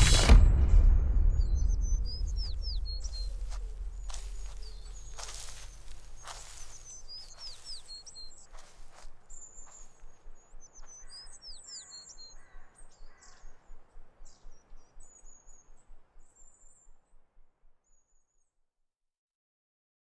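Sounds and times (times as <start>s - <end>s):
birds chirping and singing: 1.2s - 17.2s.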